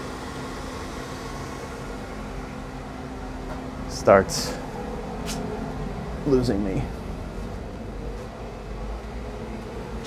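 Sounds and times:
boiler humming and hissing: 0:00.0 - 0:10.0.

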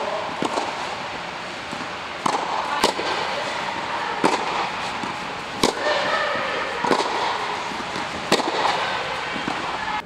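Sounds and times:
steady hall hum: 0:00.0 - 0:10.0
tennis balls struck by rackets: 0:00.0 - 0:10.0.

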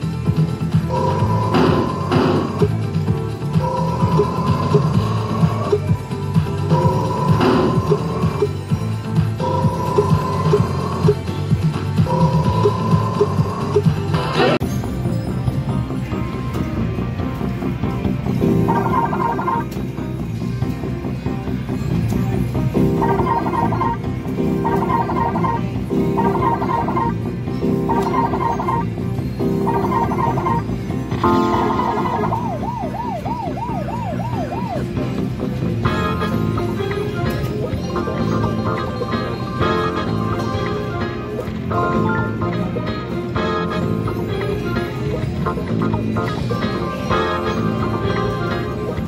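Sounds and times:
slot machine electronic music: 0:00.0 - 0:49.0
electronic siren-like warble: 0:18.6 - 0:19.6, 0:22.9 - 0:24.0, 0:24.6 - 0:27.2, 0:27.9 - 0:28.8, 0:29.6 - 0:30.6, 0:31.2 - 0:35.2
held electronic tone: 0:18.7 - 0:19.6, 0:31.2 - 0:33.4.

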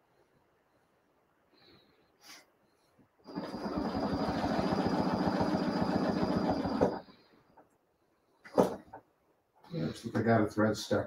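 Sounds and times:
sewing machine stitching: 0:03.3 - 0:07.1.

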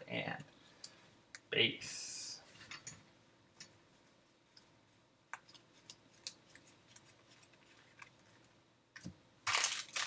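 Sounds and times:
foil wrapper crinkling: 0:09.4 - 0:10.0.

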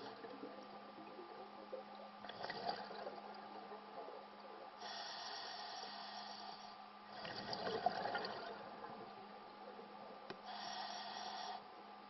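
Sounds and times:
steady low hum: 0:00.0 - 0:12.0
regulator hissing inhale: 0:04.8 - 0:06.8, 0:10.4 - 0:11.7.

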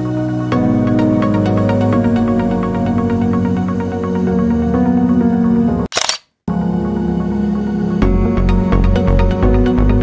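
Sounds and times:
background music: 0:00.0 - 0:05.9, 0:06.5 - 0:10.0
camera shutter release: 0:05.9 - 0:06.3.

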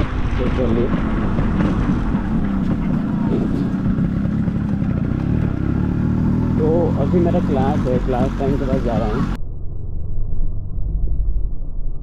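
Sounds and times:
motorcycle engine running: 0:00.0 - 0:09.4.

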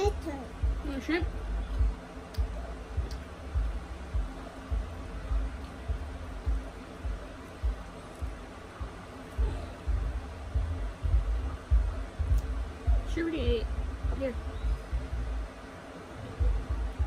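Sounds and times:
low thuds: 0:00.6 - 0:15.5
faint clicks peeling shrimp: 0:02.3 - 0:03.2.

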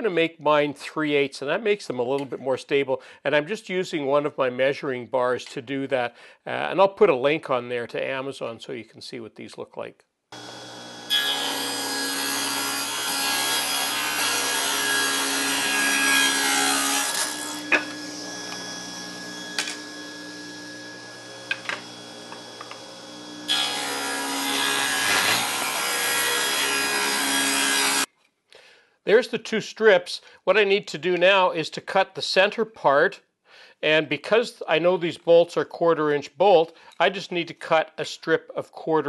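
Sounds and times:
table saw cutting wood: 0:10.4 - 0:28.1.

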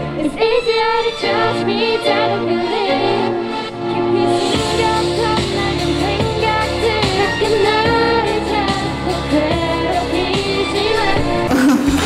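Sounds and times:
female voices singing pop song: 0:00.0 - 0:12.0
backing track with bass and beat: 0:04.6 - 0:12.0.

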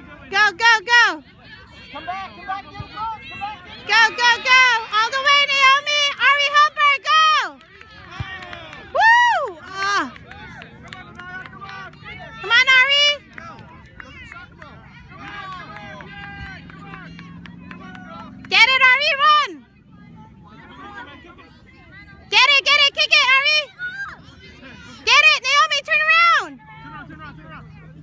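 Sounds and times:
voices of children and spectators: 0:00.0 - 0:28.0.

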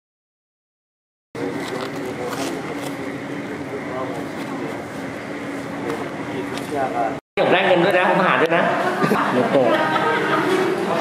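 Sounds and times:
steady ambient hum: 0:01.4 - 0:11.0.

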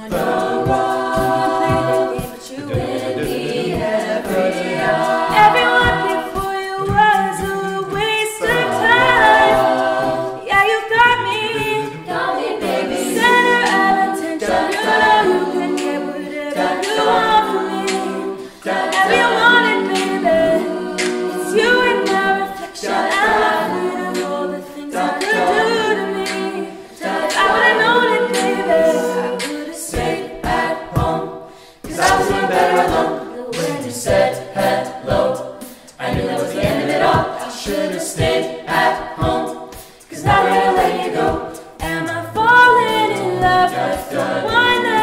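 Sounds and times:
a cappella group singing: 0:00.0 - 0:45.0
beatboxed kick drum: 0:00.0 - 0:45.0.

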